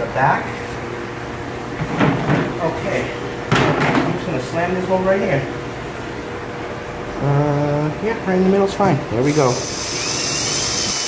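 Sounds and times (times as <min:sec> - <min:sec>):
cordless drill drilling: 0:09.3 - 0:11.0.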